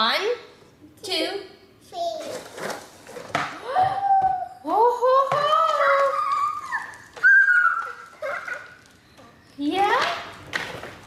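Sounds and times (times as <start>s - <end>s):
toddler squealing excitedly: 5.8s - 8.8s.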